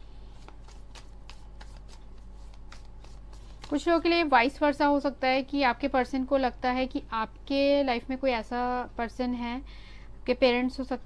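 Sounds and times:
steady low hum: 0.0 - 11.0
cards being shuffled: 0.4 - 4.2.

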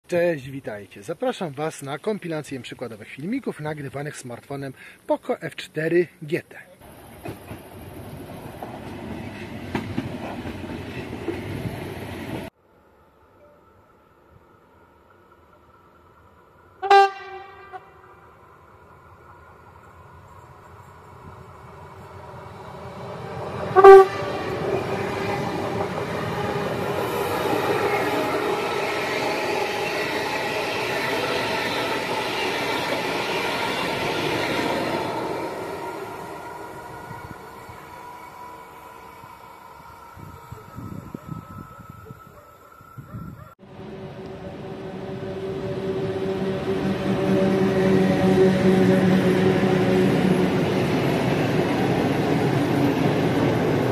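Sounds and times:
train wheels rushing on rails: 6.8 - 12.5, 19.1 - 43.0, 43.7 - 53.9
electric locomotive hum: 6.8 - 53.9
train horn blasts: 16.8 - 18.2, 23.7 - 24.6, 43.6 - 50.8.

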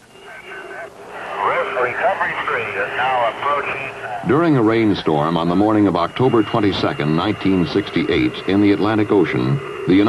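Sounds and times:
steady hum: 0.0 - 10.0
man's voice over radio: 0.2 - 10.0.

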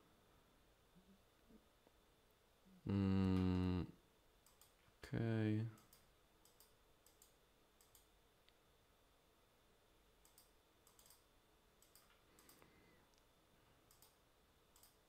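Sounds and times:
computer mouse clicks: 4.4 - 4.8, 5.8 - 8.1, 10.2 - 13.2, 13.8 - 15.0.

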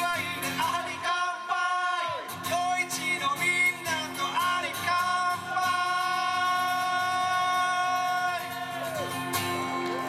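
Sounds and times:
acoustic guitar chord: 9.0 - 10.0.

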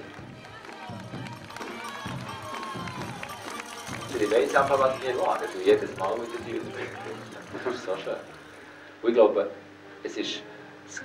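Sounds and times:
crowd clapping and calling out: 0.0 - 8.8
music: 0.0 - 11.0.

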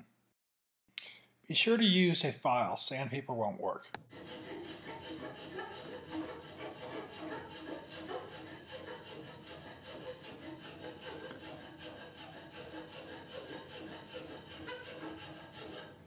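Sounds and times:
hand file scraping wood: 4.1 - 16.0.

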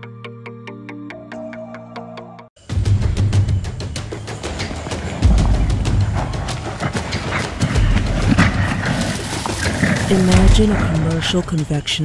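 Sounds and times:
gorilla vocalizing: 4.6 - 11.7.

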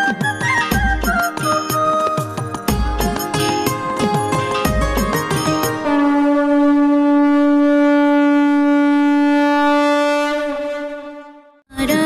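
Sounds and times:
conch shell blown: 5.6 - 11.6.

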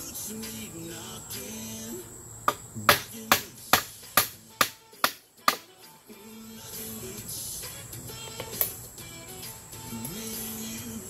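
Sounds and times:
hammer striking wood: 2.5 - 5.7.

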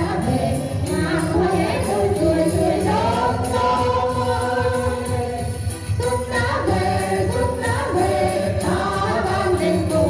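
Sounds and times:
backing music: 0.0 - 10.0
people singing through pa: 0.0 - 10.0.

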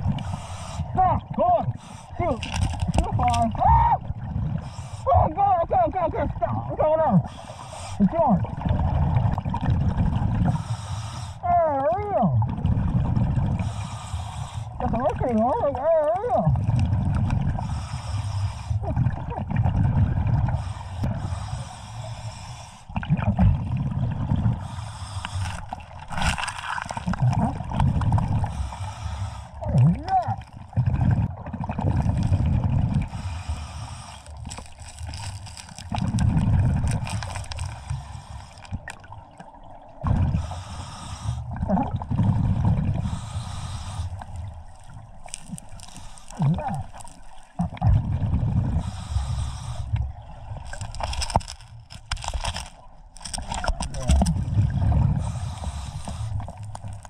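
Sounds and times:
exhaled bubbles gurgling: 0.0 - 57.0
scuba regulator inhalation hiss: 0.2 - 0.9, 4.6 - 5.1, 7.3 - 8.0, 10.4 - 11.4, 13.6 - 14.8, 17.6 - 18.8, 20.5 - 22.9, 24.6 - 25.8, 28.4 - 29.6, 33.1 - 34.5, 37.4 - 38.7, 40.4 - 41.5, 43.0 - 47.3, 48.7 - 50.0, 55.2 - 57.0
rock clicks: 2.2 - 3.6, 34.2 - 38.0, 44.2 - 47.8, 50.6 - 54.5, 55.9 - 57.0.

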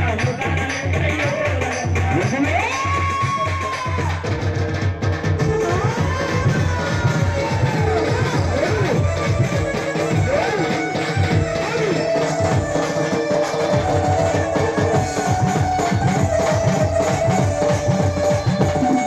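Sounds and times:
folk music with drum beat: 0.0 - 19.0.

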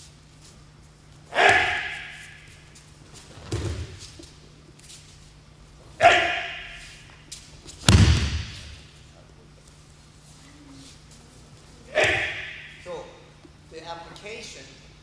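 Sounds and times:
body thudding on mat: 3.2 - 4.1, 7.8 - 8.8
sharp echoing burst: 7.9 - 8.8.

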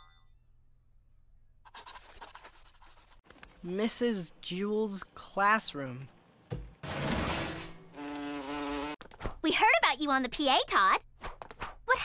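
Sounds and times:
cartoon fly buzzing: 8.0 - 9.0.

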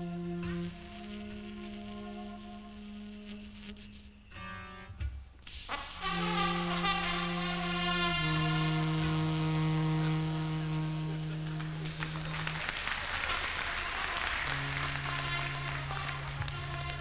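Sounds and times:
reed instrument playing: 0.0 - 4.9, 5.7 - 17.0.

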